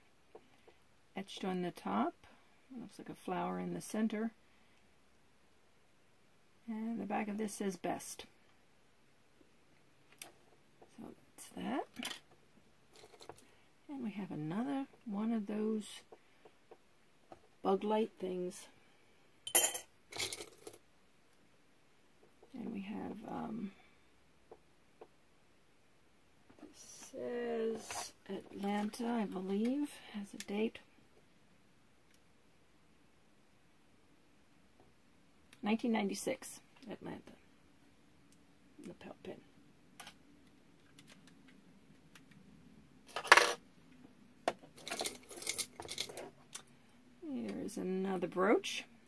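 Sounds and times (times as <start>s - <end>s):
metal jewelry clinking: 19.4s - 20.8s, 44.8s - 46.2s
metal pieces rattling: 44.8s - 46.2s.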